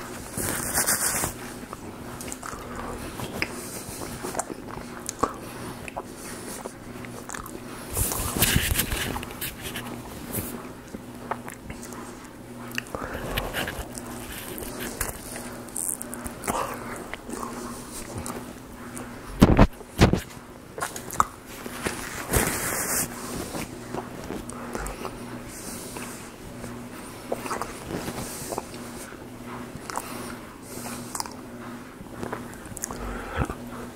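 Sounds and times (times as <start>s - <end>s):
faint steady hum: 0.0s - 33.9s
man chewing food: 0.0s - 33.9s.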